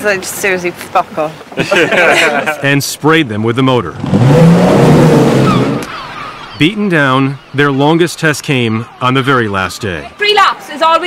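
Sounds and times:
boat wake rushing: 0.0 - 11.0
outboard motor running fast: 4.0 - 7.6.

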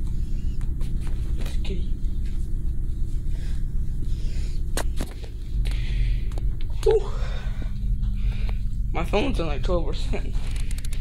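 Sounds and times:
phone handling rumble: 3.8 - 7.0, 10.1 - 11.0.

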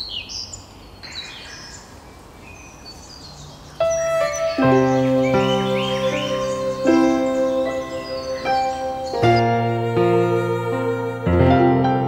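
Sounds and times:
small birds chirping: 0.0 - 11.2
music: 3.8 - 12.0.

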